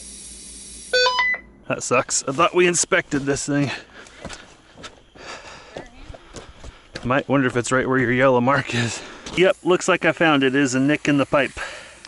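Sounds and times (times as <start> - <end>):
footsteps in snow: 2.1 - 8.2.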